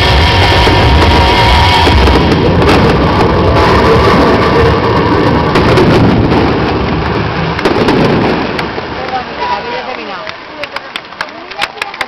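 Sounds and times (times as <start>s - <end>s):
fireworks barrage rumbling: 0.0s - 12.0s
sharp firework crackles: 0.0s - 12.0s.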